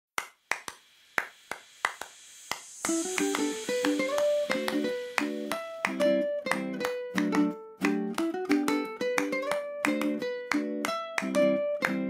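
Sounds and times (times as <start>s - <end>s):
hand snaps: 0.2s - 12.0s.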